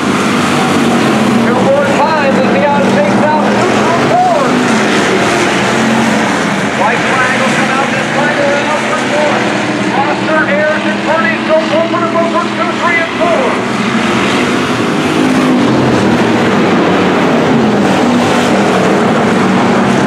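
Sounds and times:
race car engines running: 0.0 - 20.0.

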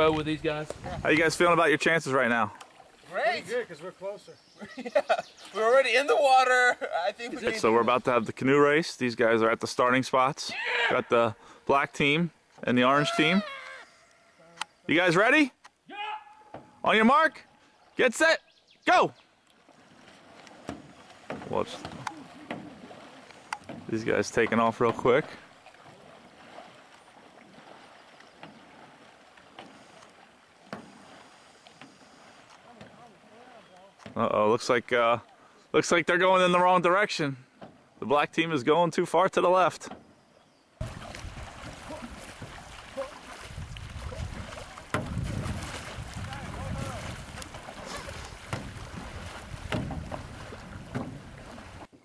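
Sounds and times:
wind rumble on microphone: 0.0 - 1.4, 40.8 - 51.8
soft lapping water: 0.0 - 8.4, 11.0 - 35.8, 39.8 - 52.0
paddle knocking against hull: 20.0 - 33.1, 40.8 - 52.0.

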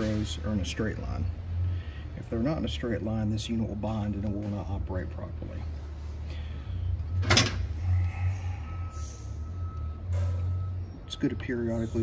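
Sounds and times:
low workshop hum: 0.0 - 12.0.

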